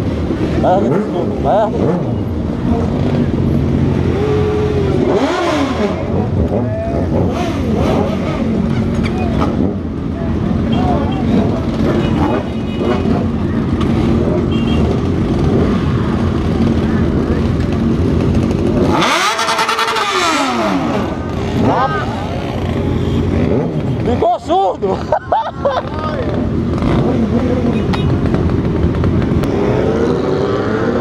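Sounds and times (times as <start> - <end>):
motorcycles idling: 0.0 - 29.9
motorcycle revving hard: 0.1 - 24.3, 25.3 - 31.0
voices: 0.6 - 18.4, 19.0 - 28.4.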